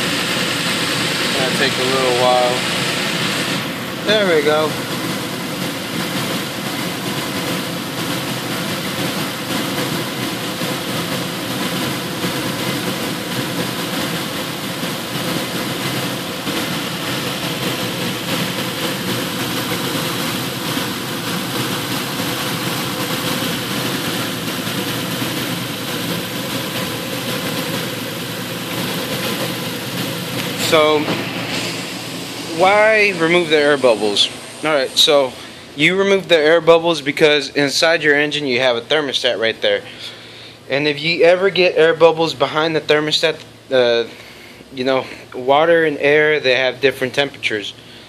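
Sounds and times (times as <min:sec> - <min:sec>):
car engine idling: 0:00.0 - 0:48.0.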